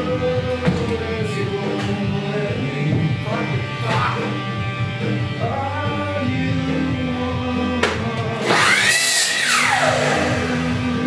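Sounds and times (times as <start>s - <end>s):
rock music with guitar: 0.0s - 11.0s
miter saw motor whining: 8.4s - 11.0s.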